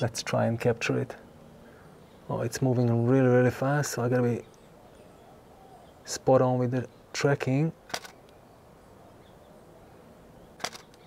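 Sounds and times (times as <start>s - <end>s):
camera shutter click: 7.9s - 8.2s, 10.6s - 11.0s.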